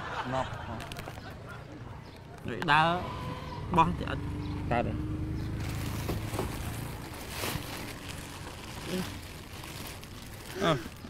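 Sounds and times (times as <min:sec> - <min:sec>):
plastic garbage bags rustling: 0:00.8 - 0:01.4, 0:05.5 - 0:11.0.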